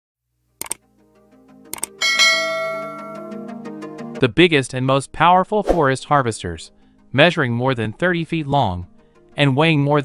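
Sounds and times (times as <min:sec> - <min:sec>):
light background music: 0:00.5 - 0:10.0
bell chime: 0:02.0 - 0:03.6.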